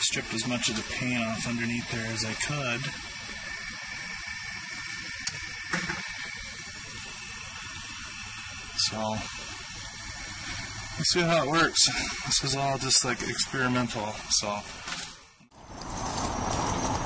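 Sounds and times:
camp stove hissing: 0.0s - 17.0s.

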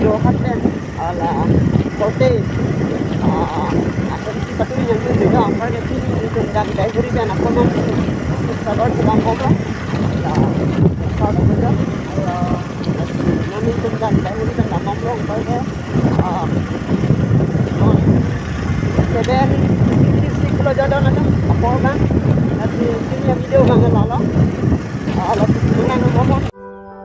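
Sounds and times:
motorcycle engine running: 0.0s - 26.5s
wind rushing over microphone: 0.0s - 26.6s.

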